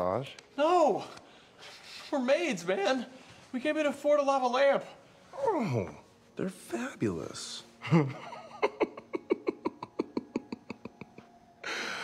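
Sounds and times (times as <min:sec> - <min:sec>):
hissing breath: 0:01.2 - 0:02.3
man laughing: 0:07.8 - 0:11.4.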